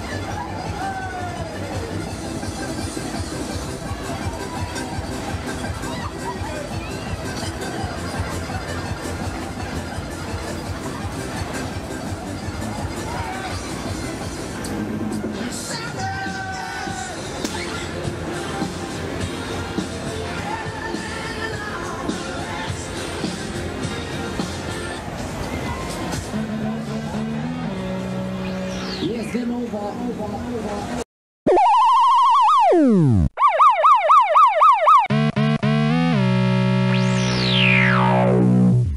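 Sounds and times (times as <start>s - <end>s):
loud ride music: 0.0s - 29.3s, 32.9s - 38.9s
fairground ride mechanical rumble: 0.0s - 31.0s
fast-warbling electronic tone: 31.5s - 38.9s
siren-like electronic tone: 31.5s - 38.9s.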